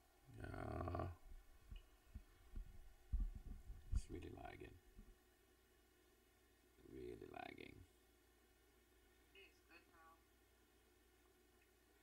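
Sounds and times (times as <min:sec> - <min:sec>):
microphone handling thumps: 0:01.7 - 0:04.3.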